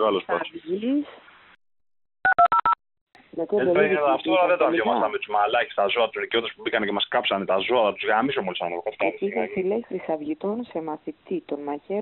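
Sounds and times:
touch-tone keypad beeps: 2.3 - 2.8.

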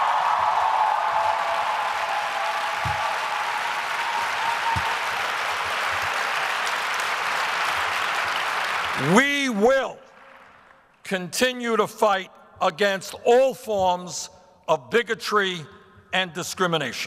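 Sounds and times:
large audience applauding: 0.0 - 11.0.

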